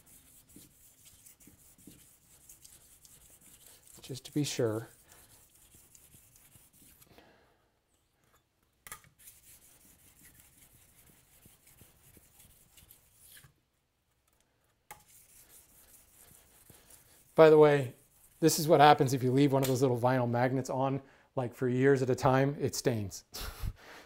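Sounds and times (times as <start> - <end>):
scraper blade rubbing on stone: 0.0 - 7.1, 9.2 - 13.5.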